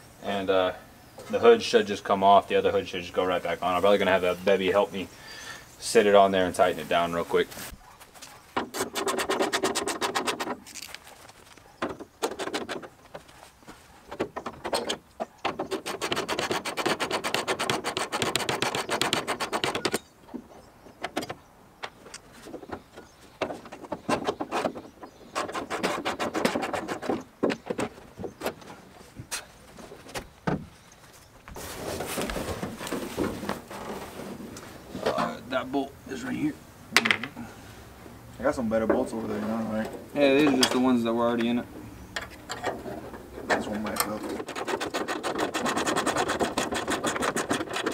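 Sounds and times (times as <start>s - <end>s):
rustling scraping handling noise: 3.1s - 47.9s.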